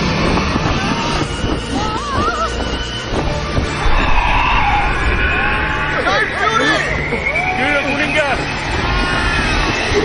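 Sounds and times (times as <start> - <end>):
low rumble: 0.0 - 10.0
steady high whistle: 3.8 - 10.0.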